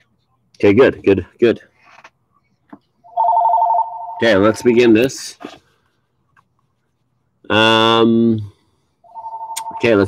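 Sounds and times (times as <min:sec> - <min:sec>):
telephone ringing: 0:03.1 - 0:04.9, 0:09.1 - 0:10.0.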